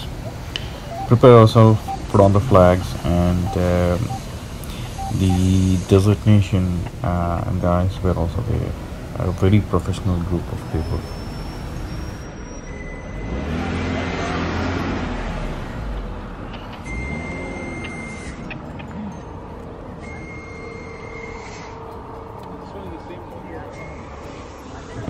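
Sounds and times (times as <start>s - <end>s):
passing vehicle rumble: 0.0s - 25.0s
traffic rumble: 0.0s - 25.0s.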